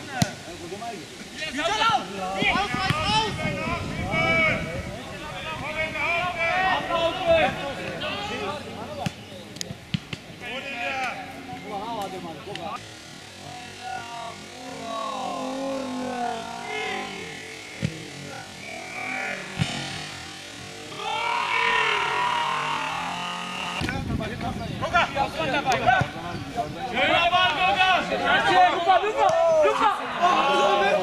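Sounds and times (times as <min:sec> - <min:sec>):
men calling and shouting: 0:00.0 - 0:31.0.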